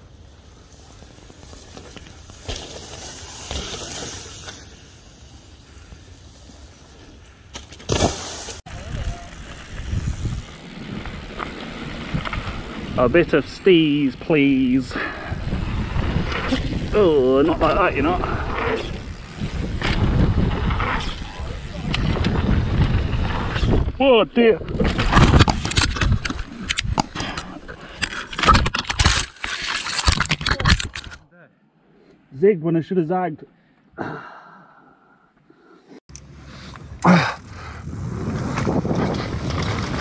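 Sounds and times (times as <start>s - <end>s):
bike tyres rolling over dirt: 0.0s - 31.1s, 36.5s - 40.0s
bike crash knocks and thuds: 7.5s - 8.6s
wind buffeting microphone: 8.7s - 13.4s, 15.0s - 24.0s.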